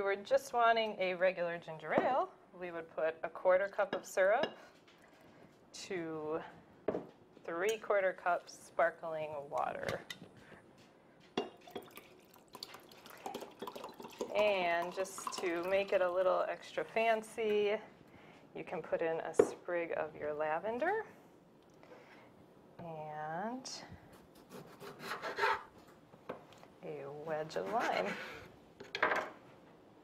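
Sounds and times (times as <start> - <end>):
water pouring into glass with ice: 11.6 - 16.2
knife cutting on wooden board: 24.4 - 25.7.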